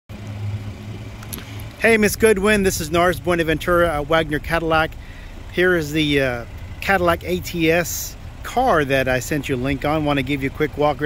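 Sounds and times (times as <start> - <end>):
man speaking: 1.8 - 11.0.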